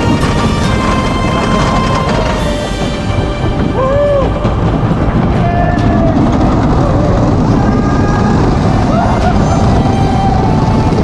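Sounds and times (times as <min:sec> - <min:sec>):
roller coaster rumbling on wooden track: 0:00.0 - 0:11.0.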